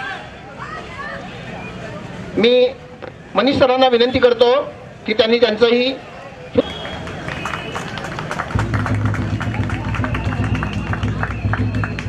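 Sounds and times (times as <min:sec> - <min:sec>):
audience clapping: 0:06.6 - 0:12.0
music with heavy bass: 0:08.6 - 0:12.0.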